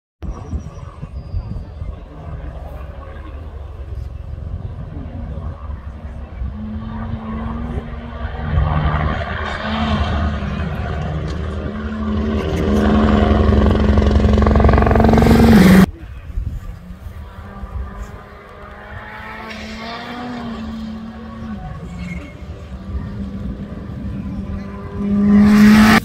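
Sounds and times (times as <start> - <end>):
rally car engine on gravel: 2.5 - 26.0.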